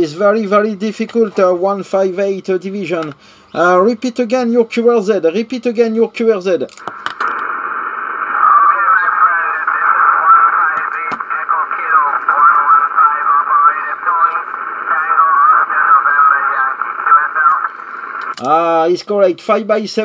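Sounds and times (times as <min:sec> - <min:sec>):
static hiss: 0:06.8 - 0:18.8
distant voice over radio: 0:08.2 - 0:17.8.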